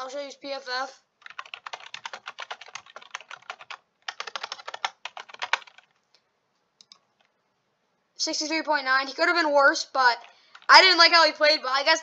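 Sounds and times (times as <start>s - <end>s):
typing on computer keyboard: 1.2s - 6.0s, 10.2s - 10.7s.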